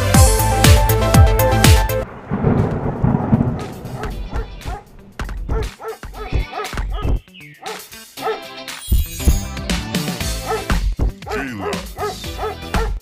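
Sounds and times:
low rumbling: 2.0s - 5.7s
dog barking: 3.8s - 8.5s, 10.4s - 13.0s.

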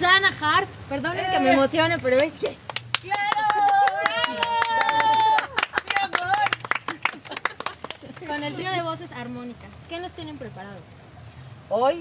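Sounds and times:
women clapping: 2.2s - 8.8s.

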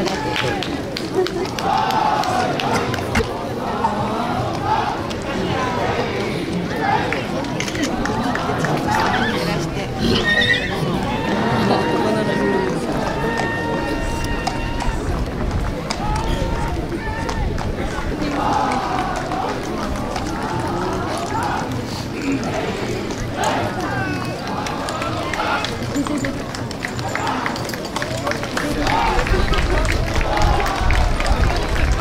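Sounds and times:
spectators chattering: 0.0s - 32.0s
horse whinnying: 9.0s - 11.2s.

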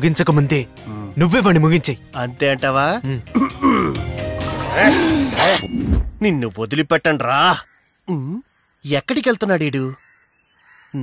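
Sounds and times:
film background music: 0.0s - 6.8s
man's wordless vocal sounds: 3.0s - 4.1s.

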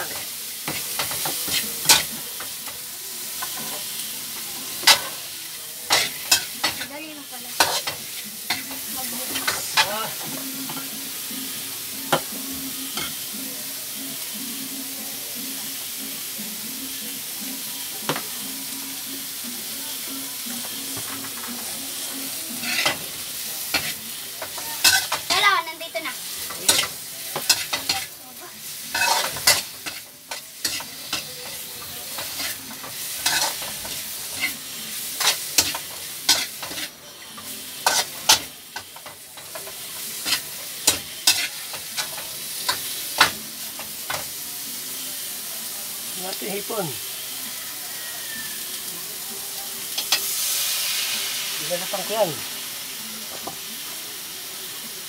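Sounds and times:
cabbage sizzling in a pan: 0.0s - 55.0s
metal spatula scraping a pan: 22.6s - 25.5s, 28.9s - 42.8s.

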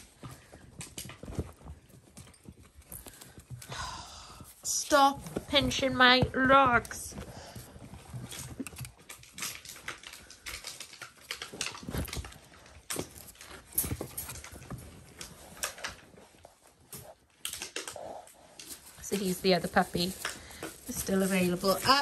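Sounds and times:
puppy claws on tiled floor: 0.0s - 22.0s
puppy noises: 7.1s - 21.4s.

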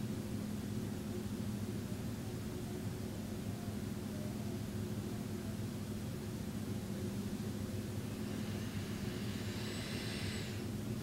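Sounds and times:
steady low hum: 0.0s - 11.0s
faint rushing hiss: 6.6s - 11.0s.

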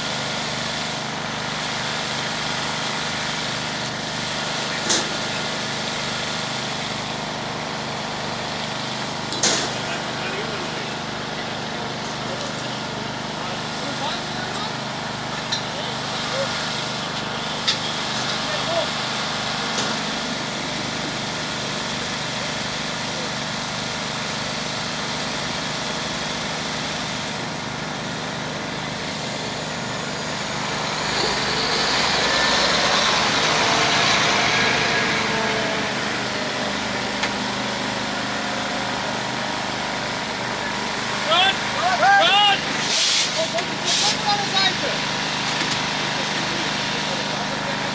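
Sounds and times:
fire engine water pump running: 0.0s - 47.9s.

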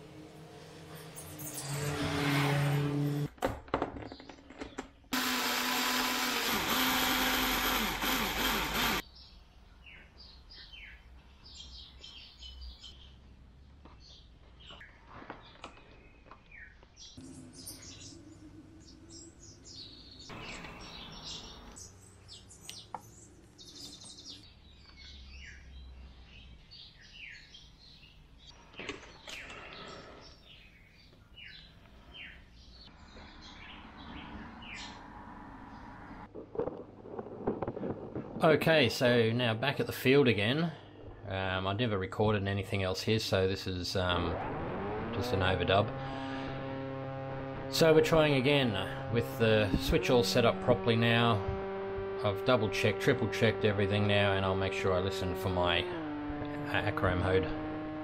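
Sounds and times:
loud machine whir: 5.2s - 9.0s.

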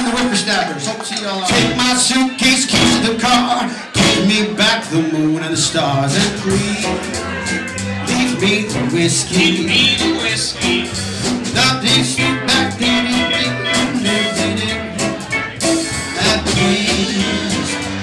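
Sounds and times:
drums: 0.0s - 18.0s
upright bass: 1.5s - 18.0s
electric guitar: 6.2s - 18.0s.

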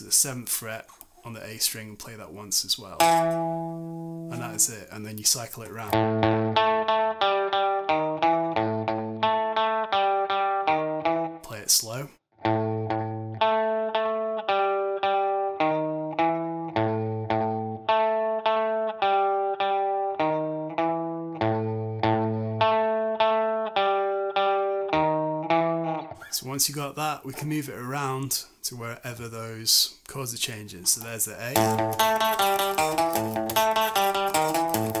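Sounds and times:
scratchy guitar string noise: 3.0s - 4.8s, 31.5s - 35.0s
electric guitar blues riff: 3.0s - 26.4s, 31.0s - 35.0s.

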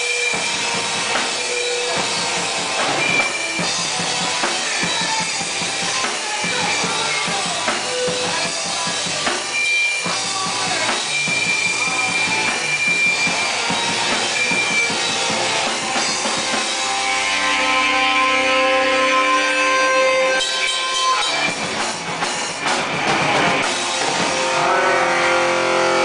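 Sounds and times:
drum kit pounding fast: 0.0s - 26.0s
electric guitar: 0.0s - 26.0s.

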